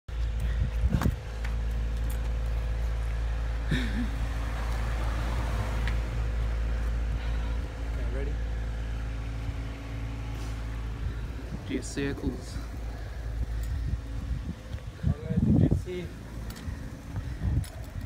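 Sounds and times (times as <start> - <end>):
vehicle engine idling: 0.1 - 18.0.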